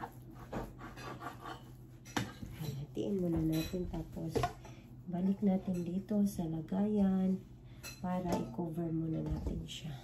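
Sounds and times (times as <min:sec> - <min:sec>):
knife cutting bread dough: 0:00.0 - 0:04.4.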